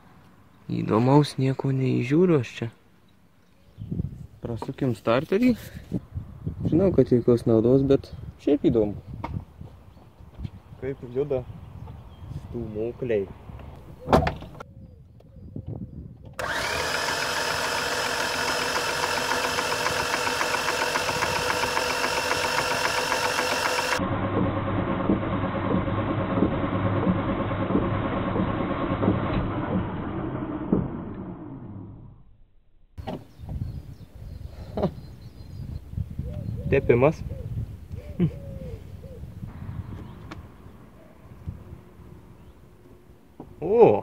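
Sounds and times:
starter motor cranking engine: 0:16.4 - 0:31.9.

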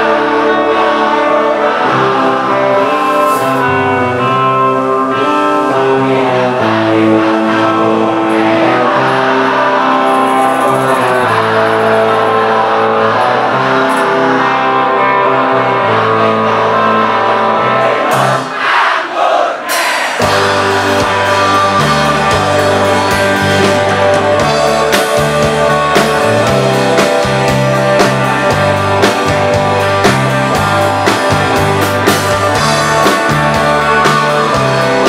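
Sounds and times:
bass guitar: 0:00.0 - 0:18.5, 0:20.2 - 0:35.0
live band through a pa: 0:00.0 - 0:35.0
person singing: 0:00.0 - 0:35.0.

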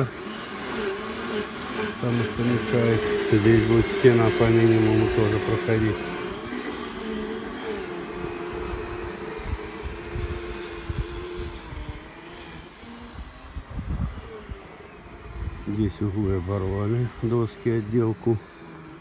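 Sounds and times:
vehicle engine hum: 0:00.0 - 0:19.0.

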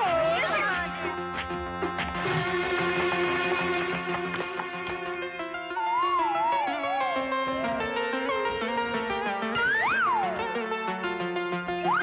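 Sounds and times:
film music with held notes: 0:00.0 - 0:12.0.

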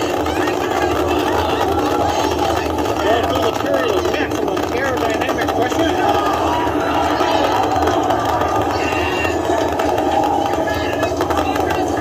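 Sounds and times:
distant rocket engines roaring: 0:00.0 - 0:12.0
indistinct voices and chatter: 0:00.0 - 0:12.0.

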